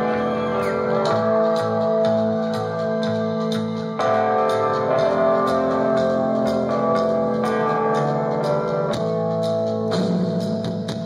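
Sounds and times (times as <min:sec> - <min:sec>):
guitars and keyboard chords: 0:00.0 - 0:11.0.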